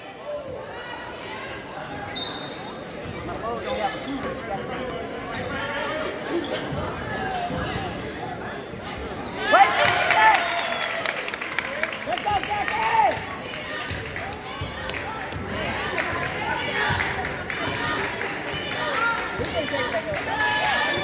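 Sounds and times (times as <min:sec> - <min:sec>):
crowd shouting: 0:12.1 - 0:21.0.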